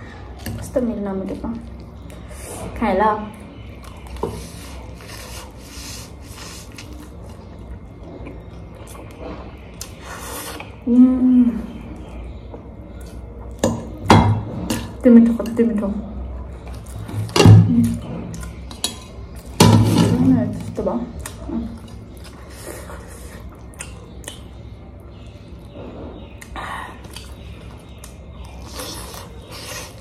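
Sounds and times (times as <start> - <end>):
chewing: 21.1 - 30.0.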